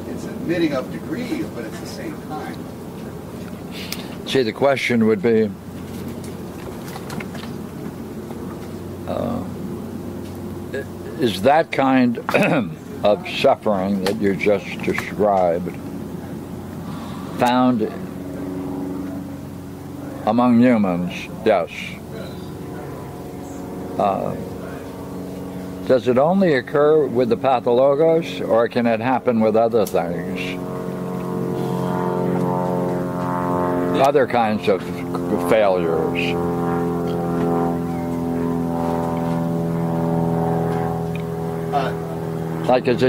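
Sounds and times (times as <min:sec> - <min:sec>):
machine drone with steady tones: 0:00.0 - 0:43.0
steady mechanical hum: 0:00.0 - 0:43.0.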